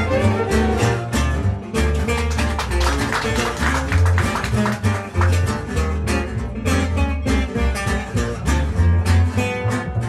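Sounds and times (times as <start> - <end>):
double bass walking: 0.0 - 10.0
guitar picking fast lead lines: 0.0 - 10.0
rhythm guitar strumming: 0.0 - 10.0.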